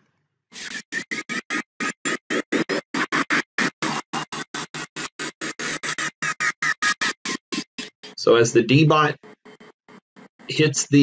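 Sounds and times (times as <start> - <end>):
stuttering music playback: 0.6 - 11.0.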